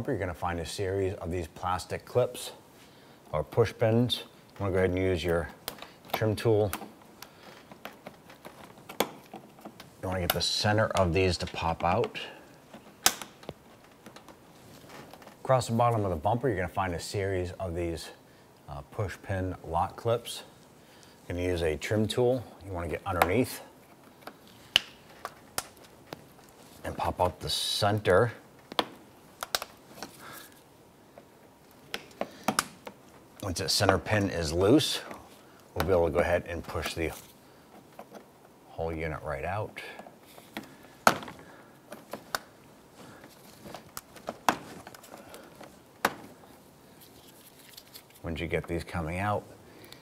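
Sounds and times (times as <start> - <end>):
plastic clicks and snaps: 5.6 - 14.4, 23.2 - 26.6, 28.6 - 30.2, 31.7 - 33.2, 40.5 - 42.6.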